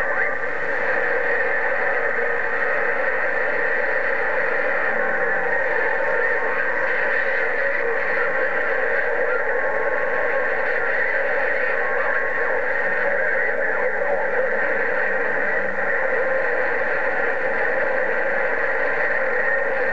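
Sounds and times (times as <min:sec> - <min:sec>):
faint steady tones: 0:00.0 - 0:19.9
radio static hiss: 0:00.0 - 0:19.9.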